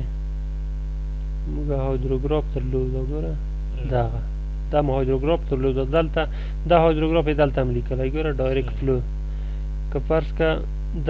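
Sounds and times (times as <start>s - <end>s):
low electrical hum: 0.0s - 11.0s
man speaking: 1.4s - 9.1s, 9.9s - 11.0s.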